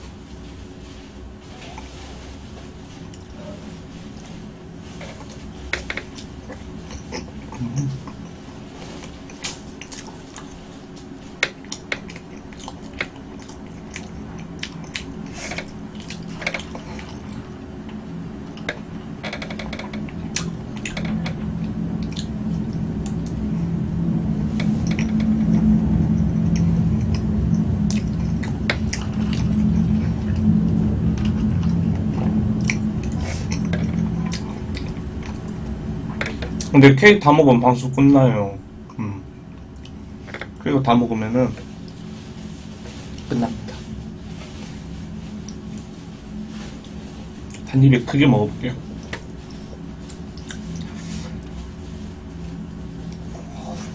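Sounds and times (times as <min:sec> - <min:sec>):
low steady hum: 0:00.0 - 0:53.9
chewing cake with mouth clicks: 0:09.0 - 0:10.6, 0:11.5 - 0:17.5.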